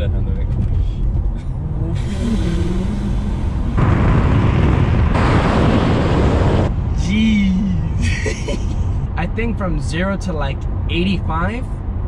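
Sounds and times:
car tyre and wind noise: 0:00.0 - 0:09.6.

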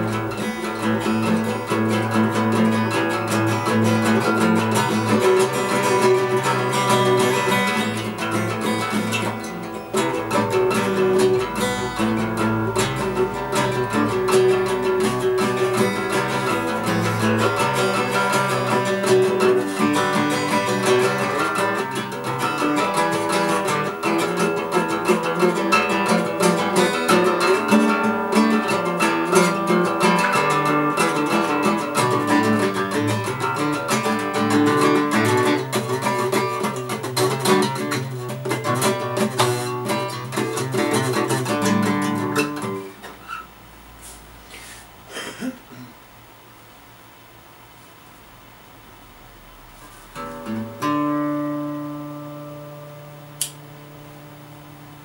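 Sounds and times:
acoustic guitar strummed: 0:00.0 - 0:46.0, 0:49.0 - 0:55.0.

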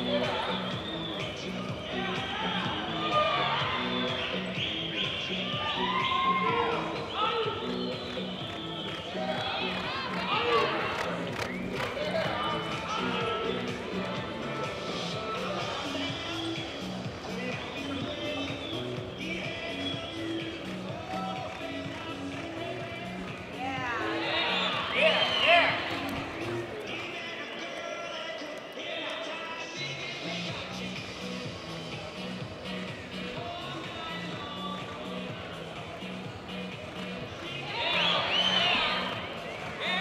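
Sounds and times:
arena music: 0:00.0 - 0:40.0
spectators whooping and cheering: 0:02.3 - 0:14.2, 0:17.3 - 0:22.1, 0:23.6 - 0:27.3, 0:37.5 - 0:40.0
people shouting: 0:05.4 - 0:07.7, 0:37.6 - 0:39.2.

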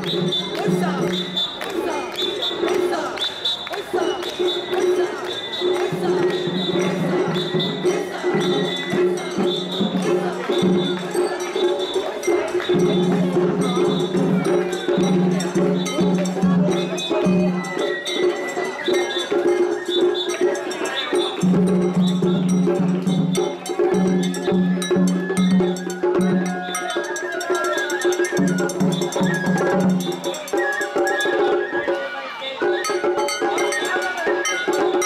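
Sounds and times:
street crowd voices: 0:00.0 - 0:35.0.

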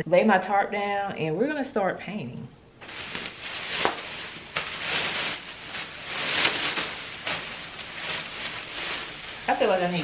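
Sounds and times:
plastic sheet crinkling: 0:02.8 - 0:10.0.

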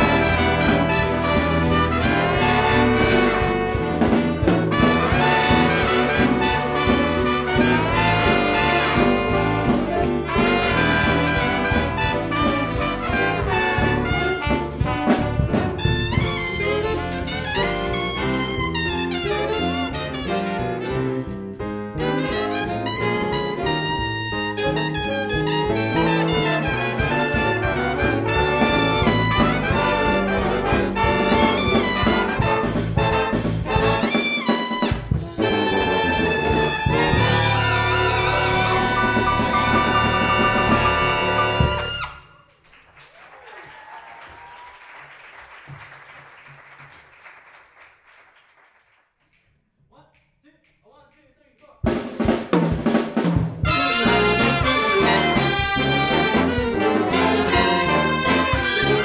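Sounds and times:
jazz big band playing swing: 0:00.0 - 0:42.5, 0:51.9 - 0:59.0.

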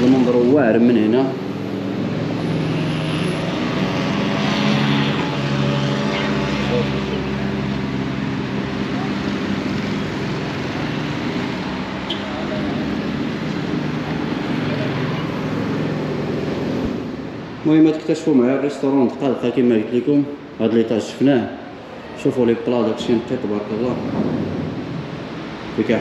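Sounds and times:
engine drone: 0:00.0 - 0:17.6
road traffic noise: 0:00.0 - 0:26.0.

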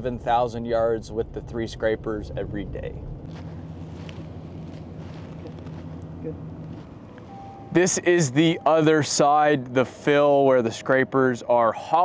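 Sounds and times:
open-air noise: 0:00.0 - 0:12.0
distant heavy machinery engine: 0:03.1 - 0:12.0.

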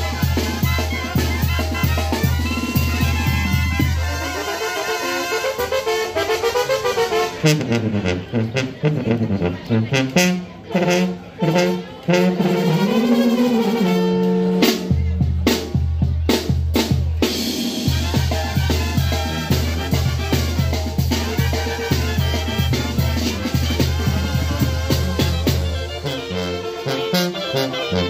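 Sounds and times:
sousaphone and bass drum: 0:00.0 - 0:05.9, 0:10.8 - 0:28.0
brass band playing: 0:00.0 - 0:28.0.

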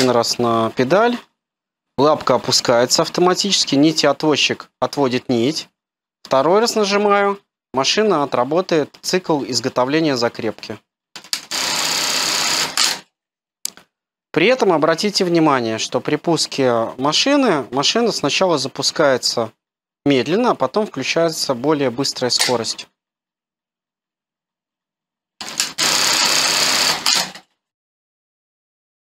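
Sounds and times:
sewing machine rapid stitching: 0:11.4 - 0:13.0, 0:25.4 - 0:27.5.

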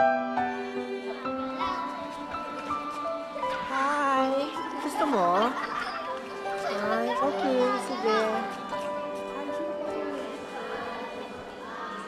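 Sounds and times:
background music with held notes: 0:00.0 - 0:12.0
children chattering: 0:00.2 - 0:12.0.

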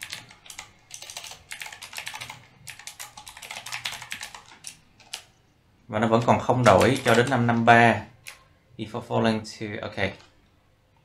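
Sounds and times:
typing on a computer keyboard: 0:00.0 - 0:05.3, 0:06.2 - 0:08.4.

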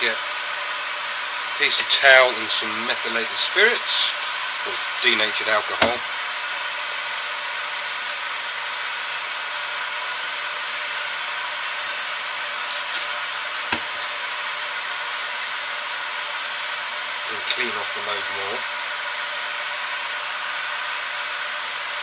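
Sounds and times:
workshop machine hiss: 0:00.0 - 0:22.0
scratchy rustle: 0:04.0 - 0:05.2.

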